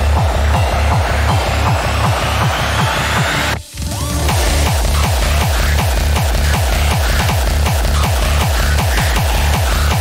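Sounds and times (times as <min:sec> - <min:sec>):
rising synth sweep: 0:00.0 - 0:06.6
fast electronic dance music: 0:00.0 - 0:10.0
pitch-dropping bass kicks: 0:00.0 - 0:10.0.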